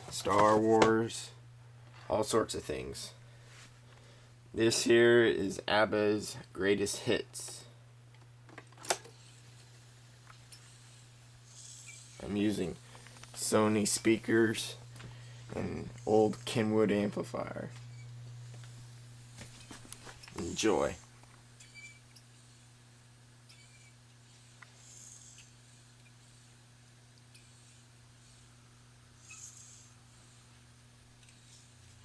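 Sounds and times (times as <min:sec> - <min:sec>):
low steady hum: 0:00.0 - 0:32.0.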